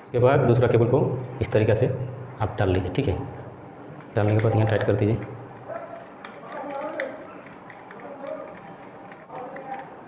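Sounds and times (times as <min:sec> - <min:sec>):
faint indistinct voices: 0:03.4 - 0:10.0.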